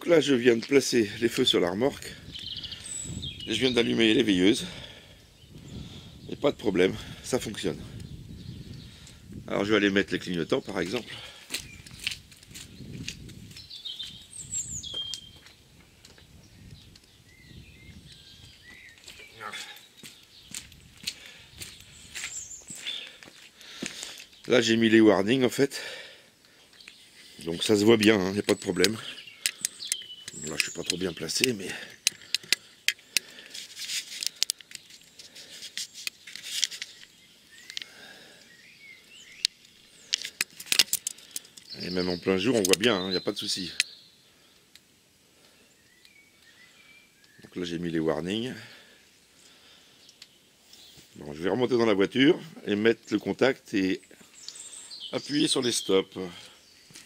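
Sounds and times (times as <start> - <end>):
bird chirping: 0.0 - 44.6, 45.4 - 57.0
faint bird chirps: 1.2 - 9.2, 12.7 - 23.8, 45.4 - 51.6
footsteps: 10.7 - 14.3, 18.4 - 24.6.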